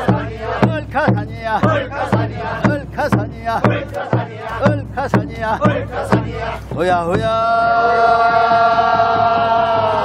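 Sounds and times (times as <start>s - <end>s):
men singing a work song: 0.0s - 10.0s.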